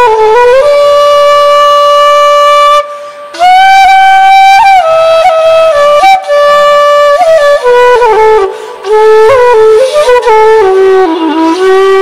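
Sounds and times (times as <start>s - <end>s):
bamboo flute long note: 0.0s - 12.0s.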